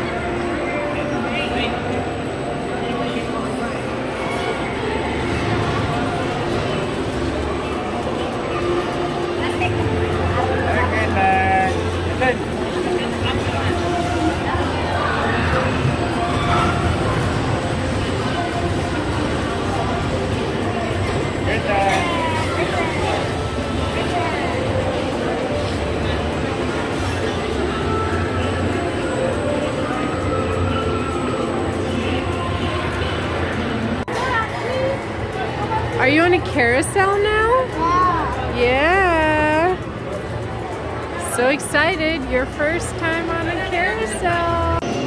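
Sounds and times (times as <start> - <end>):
children chattering: 0.0 - 36.6, 37.2 - 38.6
low mechanical rumble of rides: 0.0 - 45.0.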